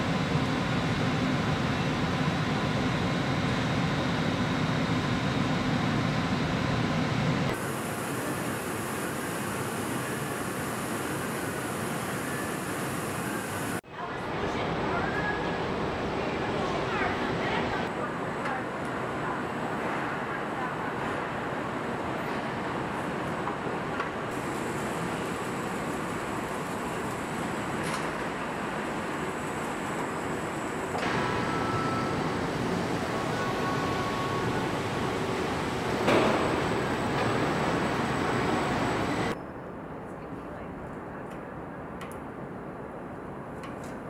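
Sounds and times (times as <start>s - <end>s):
machinery hum and hiss: 0.0s - 44.0s.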